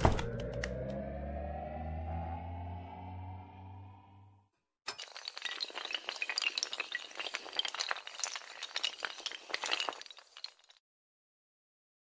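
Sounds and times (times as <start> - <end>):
music: 0.0 - 4.4
glass shattering: 4.9 - 10.8.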